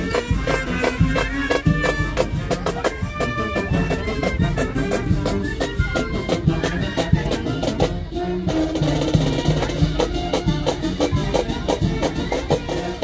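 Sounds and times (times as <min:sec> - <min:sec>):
marching band playing: 0:00.0 - 0:13.0
steady drum beat: 0:00.0 - 0:13.0.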